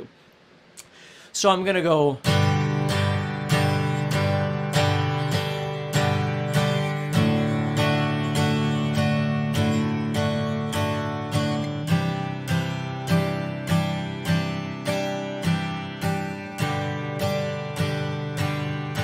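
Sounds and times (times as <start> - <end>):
acoustic guitar strummed slowly: 2.2 - 19.0.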